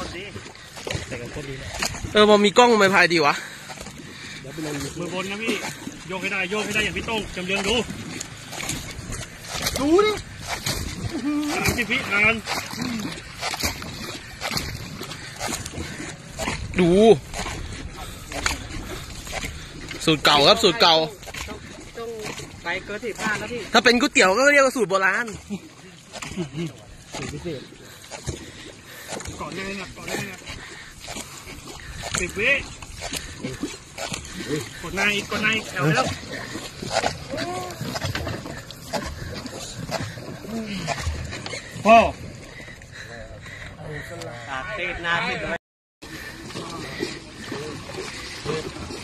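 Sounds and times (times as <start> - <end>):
paddles splashing in water: 0.0 - 49.0.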